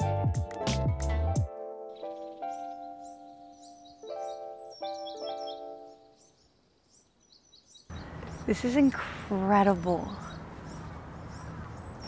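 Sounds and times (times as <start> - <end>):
sustained instrumental music: 0.0 - 6.3
small bird chirping: 2.0 - 12.0.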